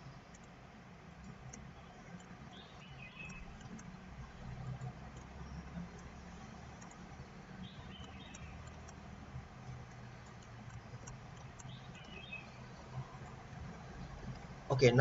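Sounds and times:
computer mouse clicks: 0:00.0 - 0:14.6
steady low hum: 0:00.0 - 0:15.0
faint high chirps: 0:01.5 - 0:03.9.

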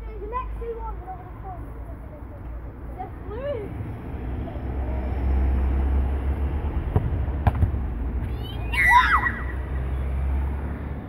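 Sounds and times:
football being kicked: 0:06.9 - 0:07.8.

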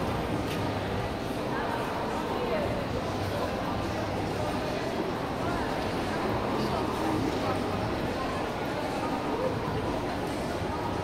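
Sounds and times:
indistinct voices of shoppers: 0:00.0 - 0:11.0
steady background noise: 0:00.0 - 0:11.0.

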